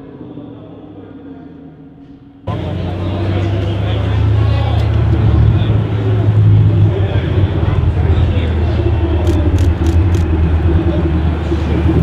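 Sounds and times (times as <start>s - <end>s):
car engine rumbling at low revs: 2.5s - 12.0s.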